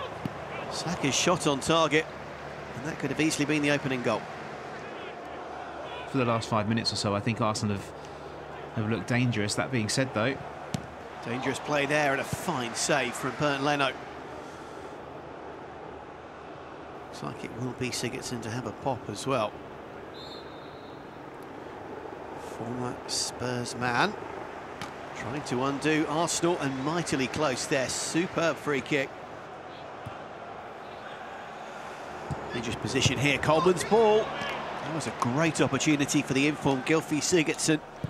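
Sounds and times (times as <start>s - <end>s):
stadium broadcast background noise: 0.0s - 38.0s.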